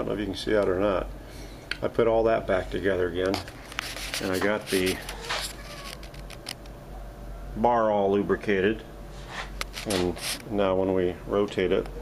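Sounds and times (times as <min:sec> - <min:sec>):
handling rustle: 0:03.3 - 0:06.6.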